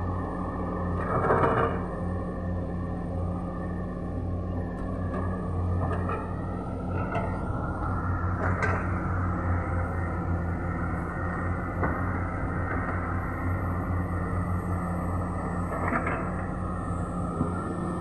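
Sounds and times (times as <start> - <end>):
excavator diesel engines humming: 0.0 - 18.0.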